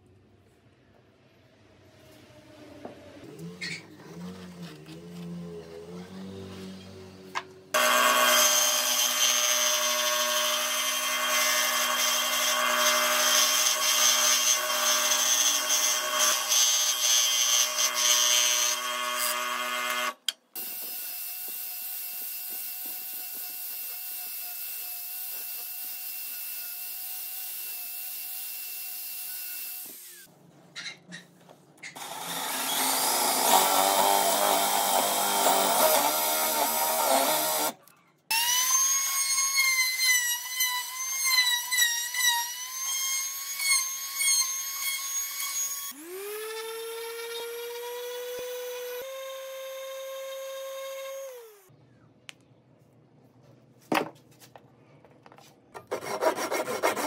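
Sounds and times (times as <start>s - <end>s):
trim router cutting wood: 7.8s - 26.7s, 32.0s - 51.6s
motor spinning up and down: 44.9s - 51.7s.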